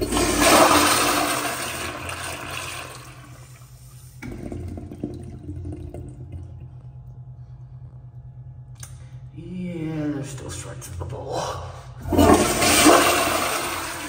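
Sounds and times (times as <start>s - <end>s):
toilet flushing: 0.0s - 7.2s, 12.0s - 14.0s
low hum: 0.0s - 14.0s.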